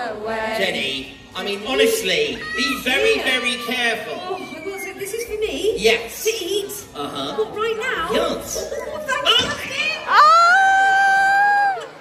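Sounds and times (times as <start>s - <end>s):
young children calling out: 2.3s - 5.2s.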